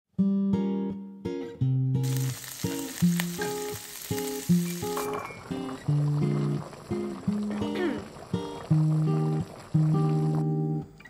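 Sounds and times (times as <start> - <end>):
plucked guitar music: 0.2 - 11.0
meat sizzling in a pan: 2.0 - 7.6.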